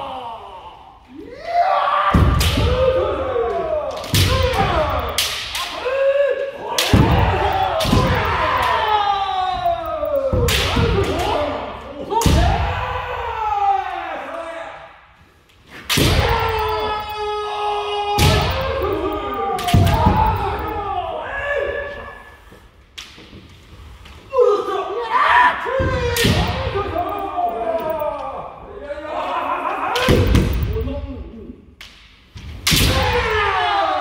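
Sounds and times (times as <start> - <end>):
loud shouts: 0.0 - 14.9, 24.3 - 30.5, 32.8 - 34.0.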